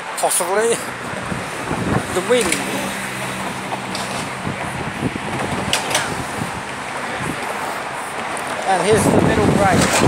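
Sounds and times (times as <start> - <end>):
road traffic passing: 0.0 - 10.0.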